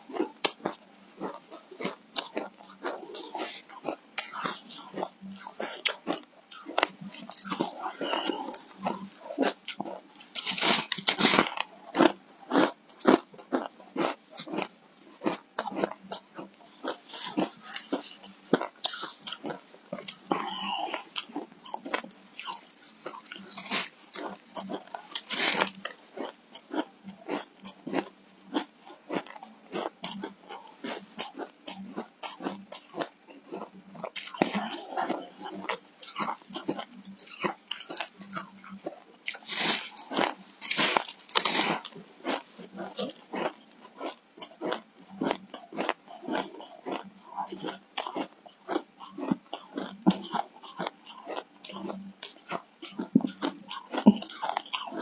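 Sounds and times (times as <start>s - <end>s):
shaved ice crunching: 25.1s - 25.8s, 39.4s - 41.9s.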